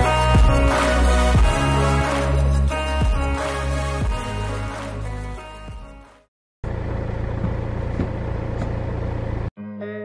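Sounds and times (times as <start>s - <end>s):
low engine hum: 6.6s - 9.5s.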